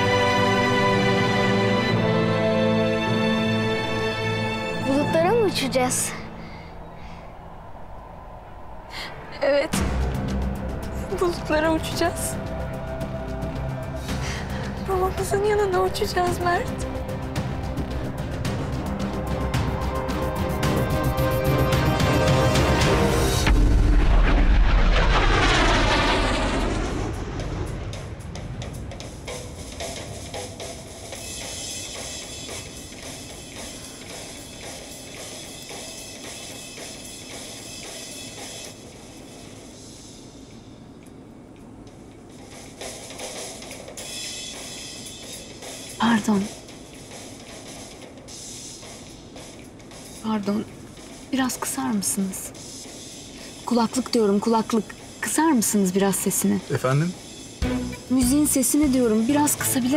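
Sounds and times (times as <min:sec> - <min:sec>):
jet airliner passing: 0:00.0 - 0:49.9
airliner cabin noise: 0:04.9 - 0:59.9.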